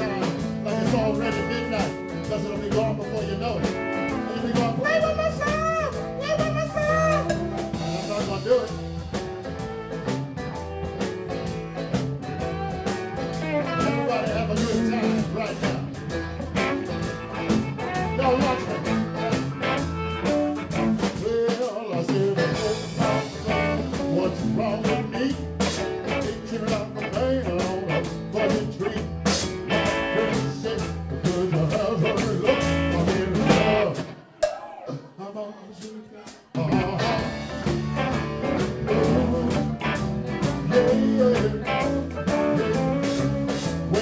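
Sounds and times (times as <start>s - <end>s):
man singing: 0.0s - 9.1s, 12.5s - 34.2s, 34.8s - 44.0s
bass guitar: 0.0s - 34.2s, 36.5s - 44.0s
electric guitar: 0.0s - 34.2s, 36.6s - 44.0s
steady drum beat: 0.0s - 34.8s, 36.3s - 44.0s.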